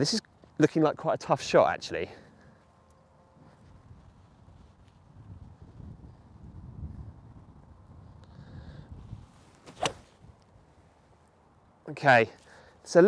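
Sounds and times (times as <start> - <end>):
wind rumble on microphone: 3.4 - 11.0
golf club striking ball: 9.6 - 10.1.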